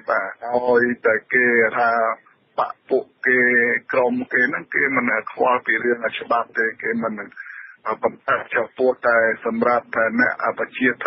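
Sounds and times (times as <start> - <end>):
newsreader talking over radio: 0.0 - 11.0.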